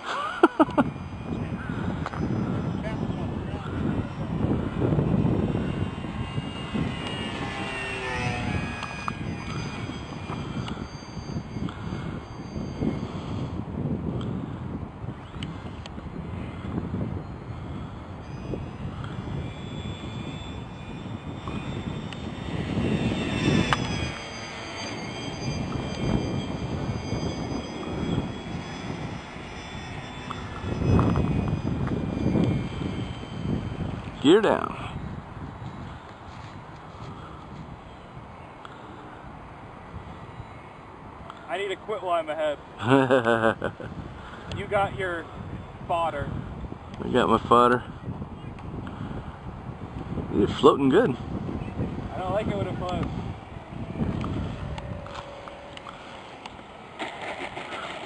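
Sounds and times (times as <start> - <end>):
model airplane motor droning: 0.0 - 58.0.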